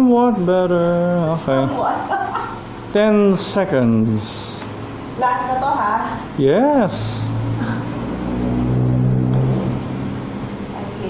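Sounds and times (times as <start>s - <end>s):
vehicle engine running: 5.5s - 11.0s.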